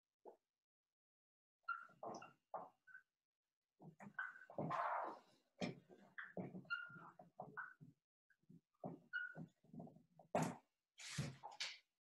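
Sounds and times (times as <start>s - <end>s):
marker squeaking on whiteboard: 6.7s - 7.0s.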